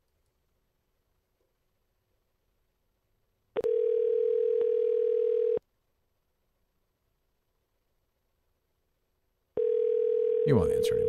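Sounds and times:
telephone ringback tone: 0:03.6 - 0:05.6, 0:09.6 - 0:11.0.

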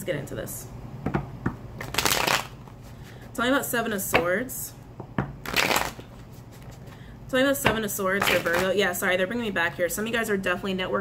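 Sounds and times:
cards shuffling flutter: 0:01.8 - 0:02.8, 0:05.5 - 0:06.9.

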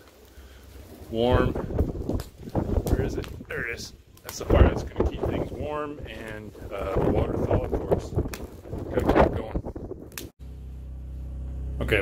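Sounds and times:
wind buffeting microphone: 0:01.2 - 0:10.3.

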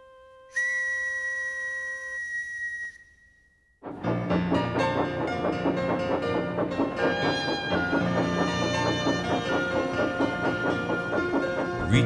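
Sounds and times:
whistle blown: 0:00.0 - 0:03.8.

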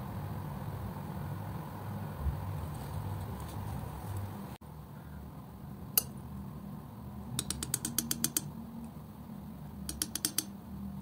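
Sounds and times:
palette knife clicking on board: 0:07.4 - 0:08.5, 0:09.9 - 0:10.5.

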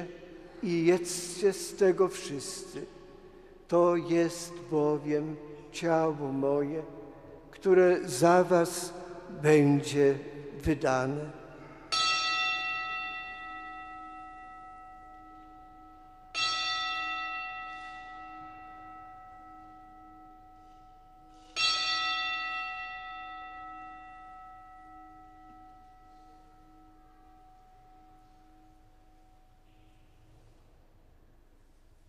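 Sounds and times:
altar bell ringing: 0:00.0 - 0:30.6.

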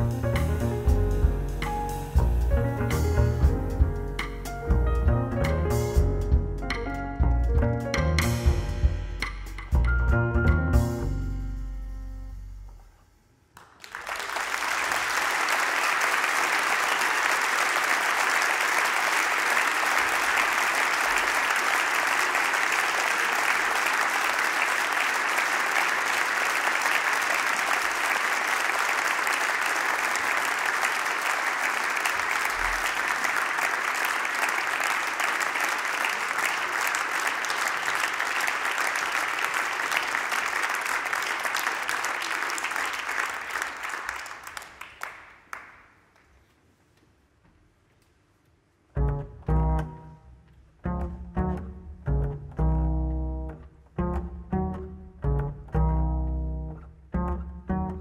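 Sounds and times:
audience applauding: 0:13.6 - 0:46.4.

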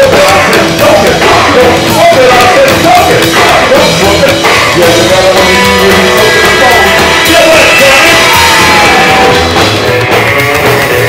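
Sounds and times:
person singing: 0:00.0 - 0:10.9
rock and roll band playing: 0:00.0 - 0:11.0.

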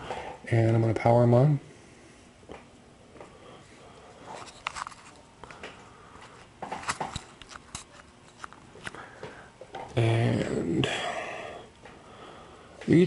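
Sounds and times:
laptop handling clicks and knocks: 0:06.6 - 0:09.0.

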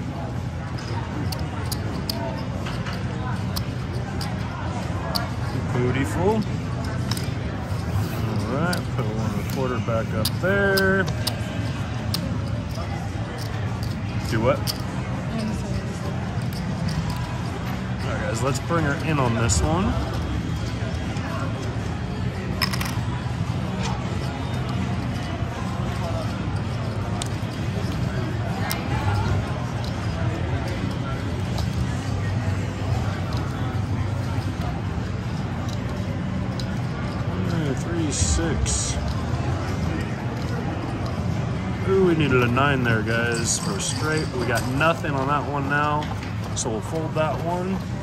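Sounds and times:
background chatter: 0:00.0 - 0:48.0
low background hum: 0:00.0 - 0:48.0
cards and chips clicking: 0:00.1 - 0:48.0
chips clicking: 0:06.0 - 0:21.7, 0:22.6 - 0:23.1.

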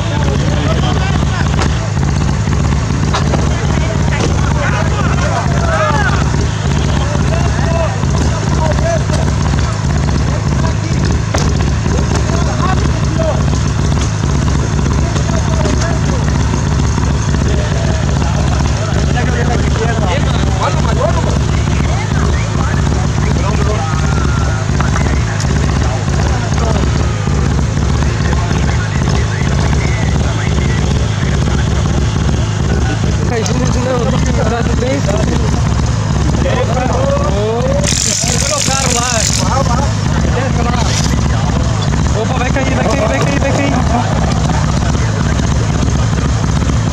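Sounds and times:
people talking indistinctly: 0:00.0 - 0:46.9
steady low rumble: 0:00.0 - 0:46.9.

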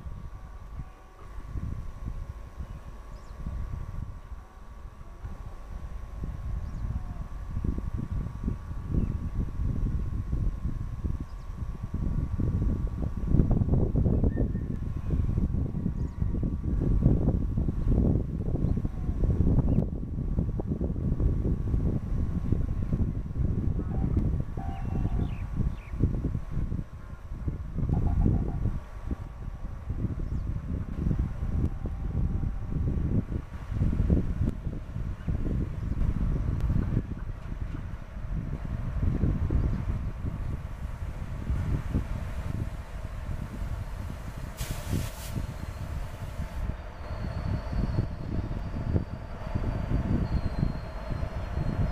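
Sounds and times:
train low rumble: 0:00.0 - 0:51.9
wind buffeting microphone: 0:00.0 - 0:51.9.

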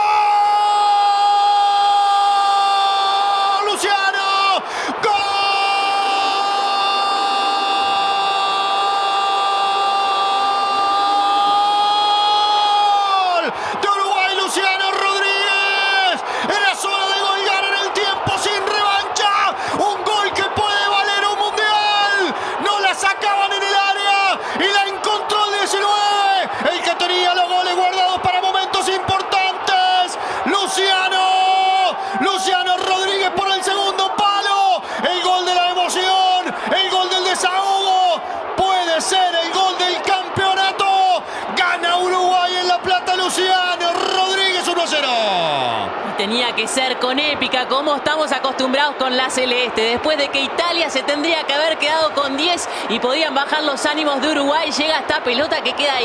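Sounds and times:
excited shouts: 0:00.0 - 0:47.2.

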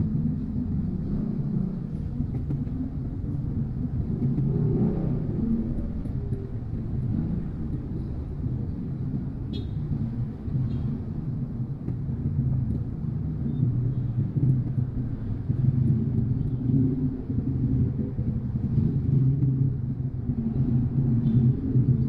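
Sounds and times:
road noise inside car: 0:00.0 - 0:22.0.

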